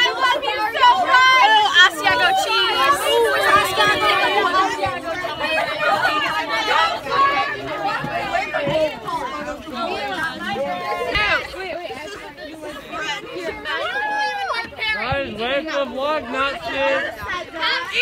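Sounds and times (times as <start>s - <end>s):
children chattering: 0.0s - 18.0s.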